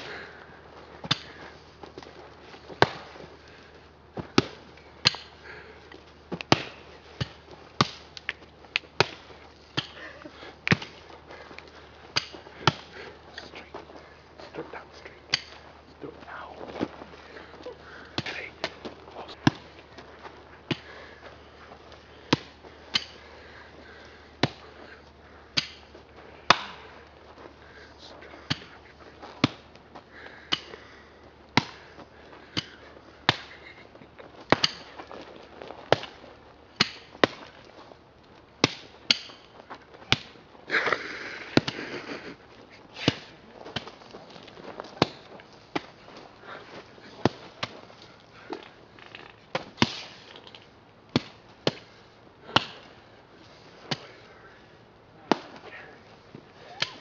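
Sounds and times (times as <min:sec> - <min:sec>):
tools chopping into ground: 0:00.0 - 0:14.0, 0:15.3 - 0:15.8, 0:16.8 - 0:37.8, 0:38.6 - 0:53.2, 0:53.8 - 0:54.3, 0:55.2 - 0:57.0.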